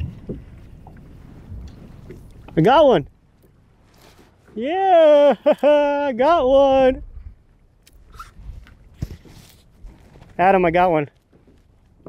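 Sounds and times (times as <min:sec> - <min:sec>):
wind rumble on microphone: 0:00.0 - 0:03.9, 0:06.3 - 0:10.8.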